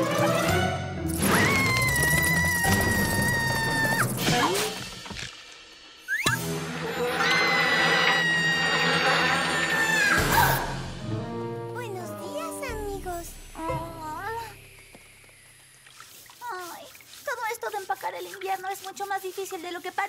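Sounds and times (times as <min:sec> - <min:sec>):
light background music: 0:06.3 - 0:15.2.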